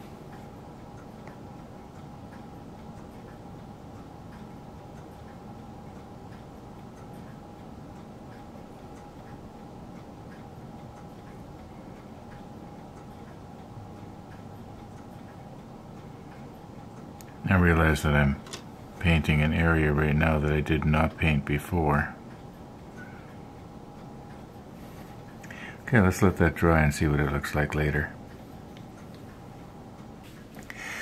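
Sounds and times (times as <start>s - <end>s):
faint hum: 0.0s - 31.0s
soft regular ticking: 0.0s - 31.0s.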